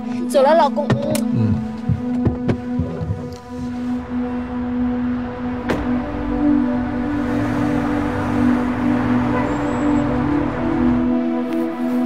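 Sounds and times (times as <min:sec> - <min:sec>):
low thudding pulse: 0:01.3 - 0:11.2
sustained drone chord: 0:02.8 - 0:12.0.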